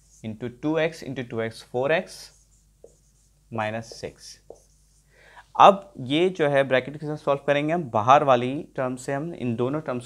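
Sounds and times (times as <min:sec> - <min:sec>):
marker pen scratching whiteboard: 0:00.0 - 0:00.4, 0:02.0 - 0:05.1
man speaking: 0:03.5 - 0:04.5, 0:05.5 - 0:10.0.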